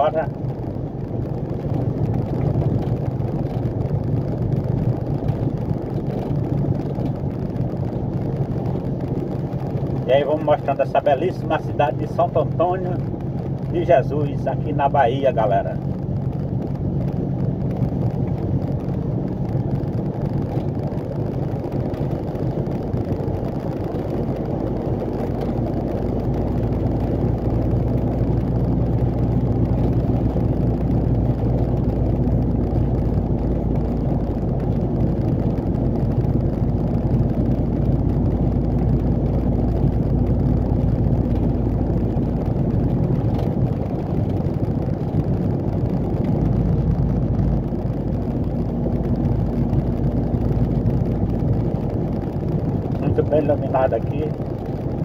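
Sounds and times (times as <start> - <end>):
road noise: 0.0 - 55.0.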